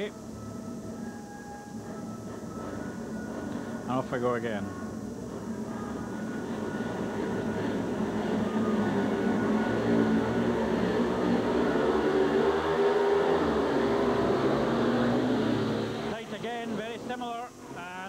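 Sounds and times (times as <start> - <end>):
motorcycle engines at high revs: 6.4 - 17.7.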